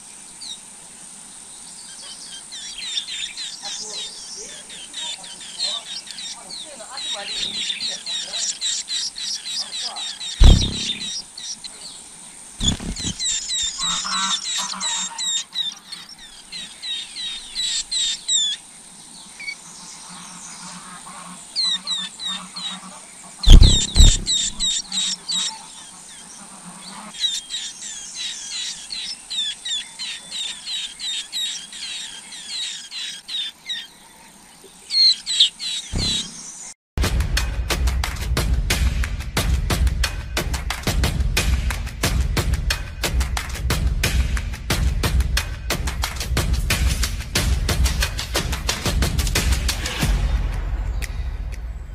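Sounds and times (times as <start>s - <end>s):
nestlings chirping: 1.6s - 12.0s, 12.6s - 18.6s, 23.4s - 26.3s, 26.9s - 36.7s
loud low thumps: 10.4s - 11.1s, 12.6s - 13.2s, 23.5s - 24.7s, 36.0s - 36.4s.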